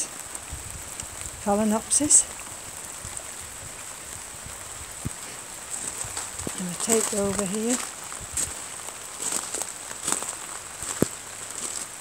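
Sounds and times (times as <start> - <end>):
rain on gravel and leaves: 0.0 - 12.0.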